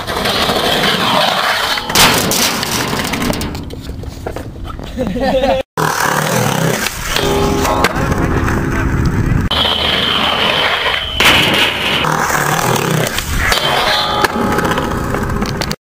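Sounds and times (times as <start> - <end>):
skateboard wheels rolling on concrete: 0.0 - 2.0, 2.7 - 15.8
skateboard trucks grinding metal rail: 0.0 - 4.4, 5.8 - 15.8
high steady screech: 9.5 - 11.2.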